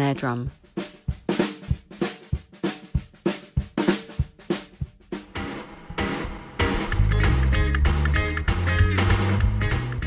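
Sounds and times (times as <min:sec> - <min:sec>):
snare drum backbeat: 0:00.7 - 0:10.0
bass drum thumps: 0:01.1 - 0:10.0.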